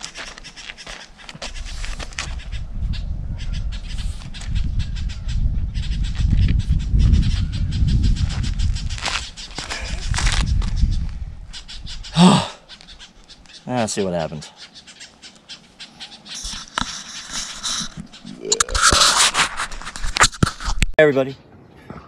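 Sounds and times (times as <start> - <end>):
camera handling clicks and scrapes: 16.4 - 21.0.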